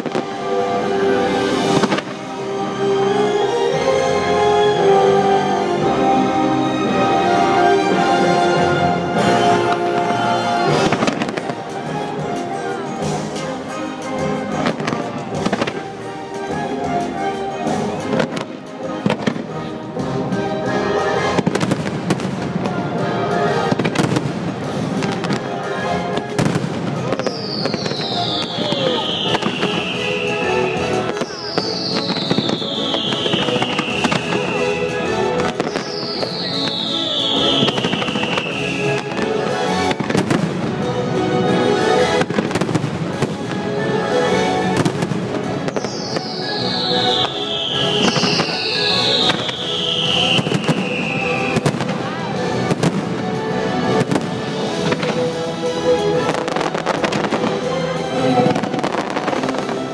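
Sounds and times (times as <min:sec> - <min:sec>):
fireworks cracks and booms: 0:00.0 - 0:00.6, 0:01.2 - 0:02.4, 0:09.2 - 0:16.1, 0:17.6 - 0:19.6, 0:21.2 - 0:41.0, 0:41.7 - 0:59.9
loud show music: 0:00.0 - 0:59.9
falling firework whistle: 0:26.4 - 0:39.3, 0:44.8 - 0:51.9.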